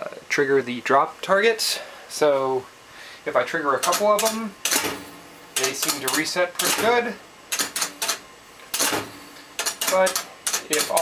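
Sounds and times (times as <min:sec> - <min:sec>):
pinball drop targets clacking: 0:03.8 - 0:05.0, 0:05.6 - 0:11.0.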